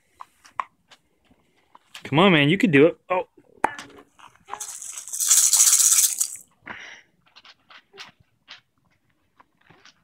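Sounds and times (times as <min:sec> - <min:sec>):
baby rattle shaken: 0:04.5 - 0:06.5.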